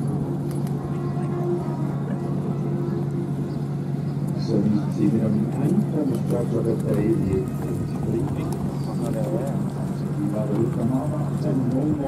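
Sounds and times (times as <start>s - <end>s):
horse hooves clip-clopping: 5.6s - 12.0s.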